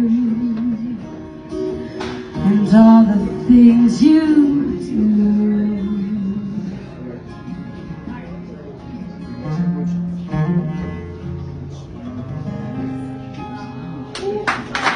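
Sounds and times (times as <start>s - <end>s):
acoustic guitar strums: 0.1s - 4.2s.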